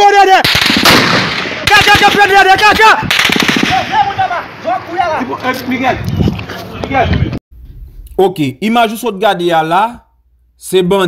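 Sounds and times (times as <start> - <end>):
man shouting: 0.0 - 0.5, 1.6 - 3.1, 3.7 - 5.4
automatic rifle fire: 0.4 - 4.0.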